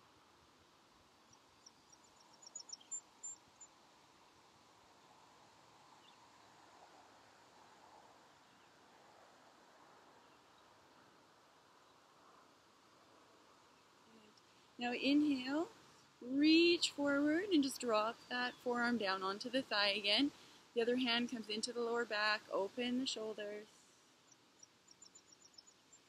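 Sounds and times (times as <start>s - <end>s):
faint outdoor hiss: 0.0s - 26.0s.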